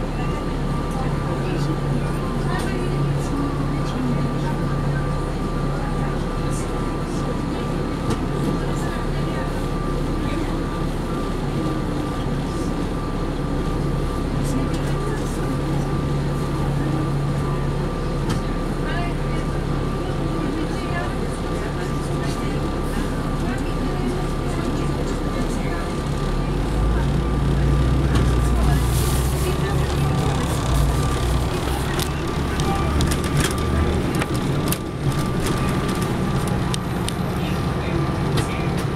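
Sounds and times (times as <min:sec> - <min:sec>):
bus engine drone: 0:00.0 - 0:38.9.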